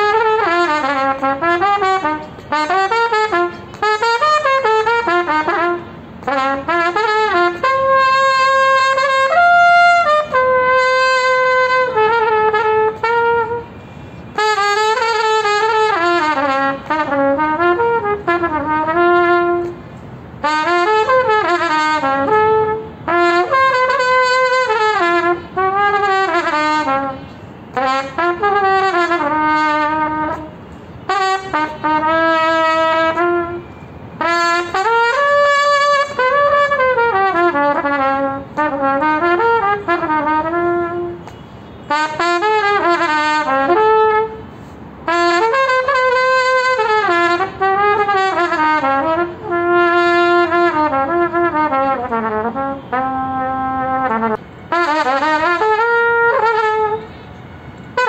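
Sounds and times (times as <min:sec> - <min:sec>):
solo trumpet melody: 0:00.0 - 0:58.0.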